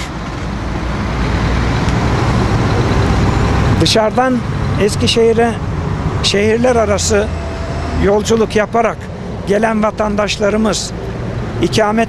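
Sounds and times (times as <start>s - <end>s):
highway traffic passing: 0.0s - 12.0s.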